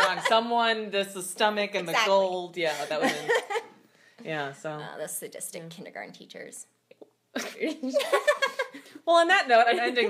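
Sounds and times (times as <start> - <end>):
women laughing: 0.0 - 0.4, 2.7 - 3.7.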